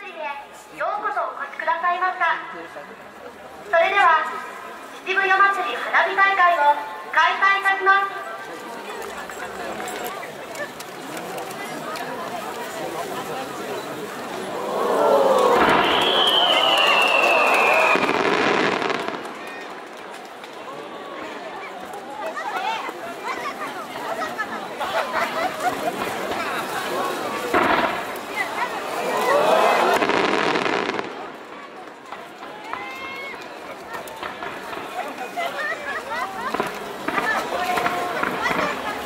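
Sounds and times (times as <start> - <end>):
crowd voices: 0.0 - 39.0
fireworks crackling: 3.0 - 39.0
firework whistle: 15.4 - 19.1.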